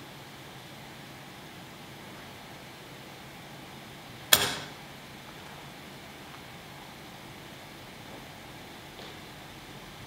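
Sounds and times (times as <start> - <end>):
steady hiss: 0.0 - 10.0
sharp knock: 4.3 - 4.8.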